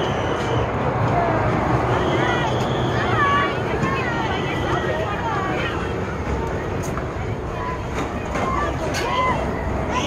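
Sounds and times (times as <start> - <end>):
distant people talking: 0.0 - 10.0.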